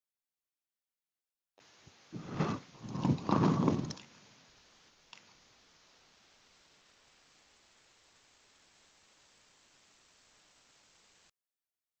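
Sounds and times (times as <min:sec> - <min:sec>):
faint steady hiss: 0:01.6 - 0:11.3.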